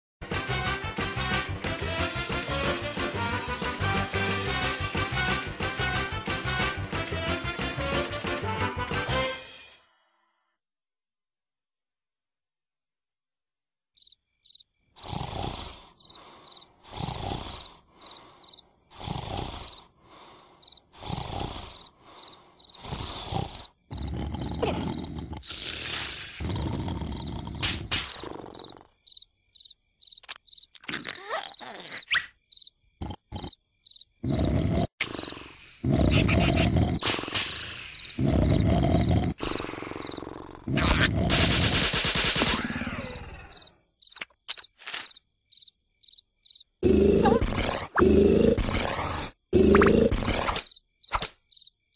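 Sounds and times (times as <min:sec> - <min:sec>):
high cricket chirping: 0:14.0 - 0:25.4, 0:26.1 - 0:30.8, 0:31.4 - 0:40.4, 0:42.8 - 0:51.9
cartoon vocal sound effects: 0:24.6 - 0:25.7, 0:30.8 - 0:32.3, 0:40.7 - 0:41.4, 0:47.1 - 0:48.7.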